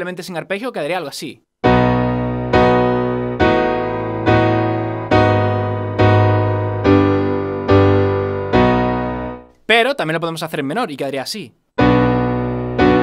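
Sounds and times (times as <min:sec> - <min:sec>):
piano block chords: 0:01.6 - 0:09.5, 0:11.8 - 0:13.0.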